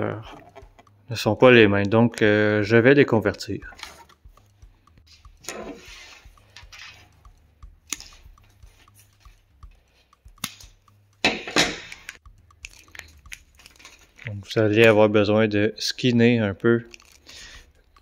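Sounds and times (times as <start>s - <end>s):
diagonal cutters cutting wire: 0.0s - 15.0s, 16.9s - 18.0s
hands handling wires: 3.7s - 15.0s, 16.9s - 18.0s.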